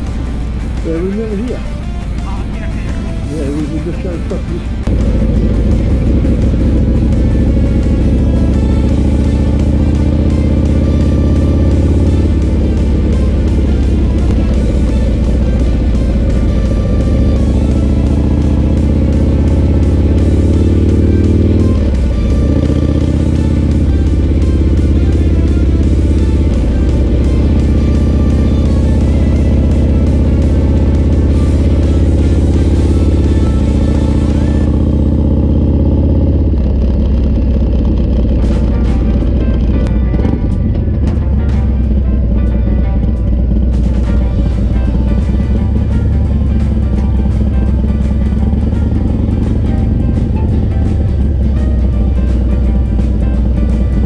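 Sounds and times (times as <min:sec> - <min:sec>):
motorcycle engine drone: 0:00.0 - 0:54.0.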